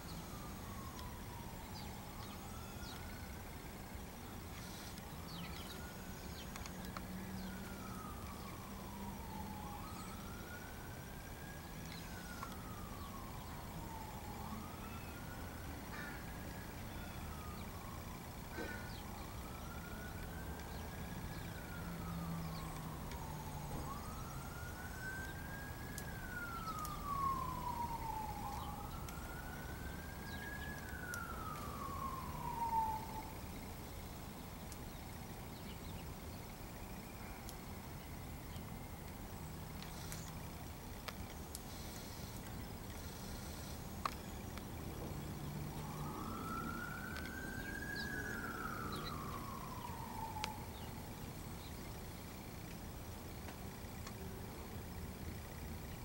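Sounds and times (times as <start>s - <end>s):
siren wailing: 0.0s - 56.0s.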